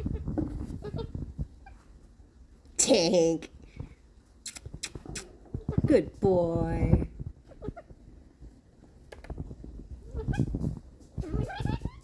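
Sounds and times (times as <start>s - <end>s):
animal whining: 11.2s - 12.0s.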